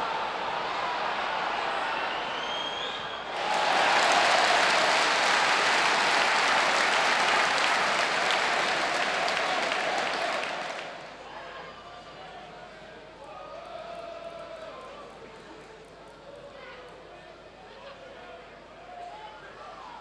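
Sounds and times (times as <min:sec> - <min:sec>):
stadium crowd murmuring: 0:00.0 - 0:20.0
crowd cheering and applause: 0:03.3 - 0:11.2.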